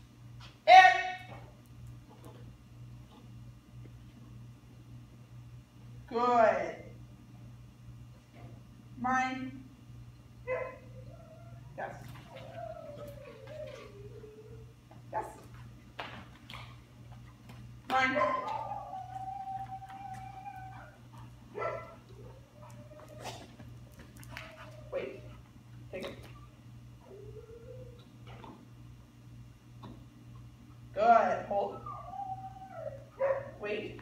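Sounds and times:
dog whining: 0:10.5 - 0:14.8, 0:18.2 - 0:25.4, 0:27.0 - 0:28.5, 0:31.5 - 0:33.6.

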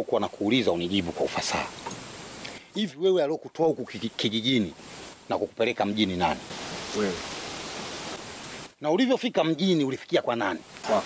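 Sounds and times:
steady background hiss: 0:00.0 - 0:11.0
person speaking: 0:08.8 - 0:11.0.

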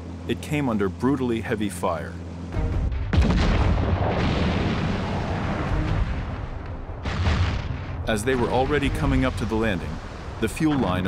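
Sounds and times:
heavy gunfire and explosions: 0:02.6 - 0:11.0
loud blast: 0:02.9 - 0:10.2.

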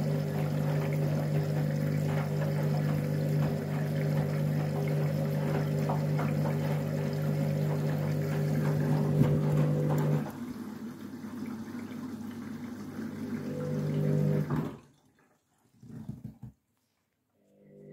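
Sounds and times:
washing machine motor humming: 0:00.0 - 0:14.8
water sloshing in drum: 0:00.0 - 0:16.6.

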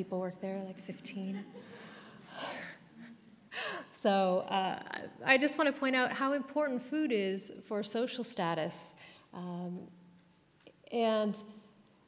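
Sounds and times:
woman breathing: 0:01.6 - 0:04.0, 0:09.0 - 0:09.4.

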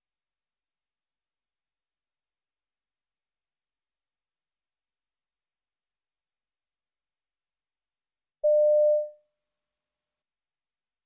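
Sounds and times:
steady electronic beep: 0:08.4 - 0:09.1.

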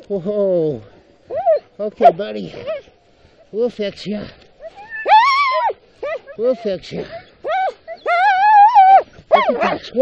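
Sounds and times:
dog whining: 0:01.3 - 0:01.7, 0:04.6 - 0:10.0.

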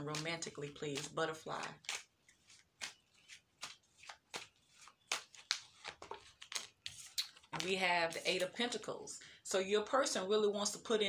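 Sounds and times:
cards being shuffled: 0:00.1 - 0:08.6.

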